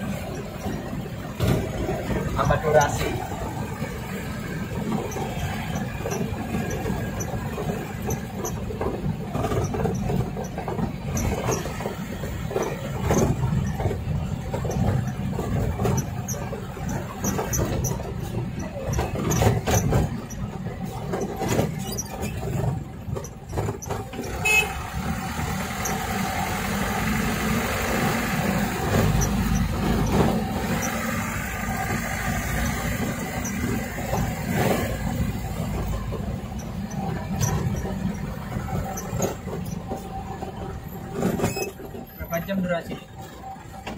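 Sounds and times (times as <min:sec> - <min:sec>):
knocks and rattles: 0:00.0 - 0:24.4, 0:25.0 - 0:42.1
road noise: 0:00.0 - 0:43.9
truck engine running: 0:00.0 - 0:43.9.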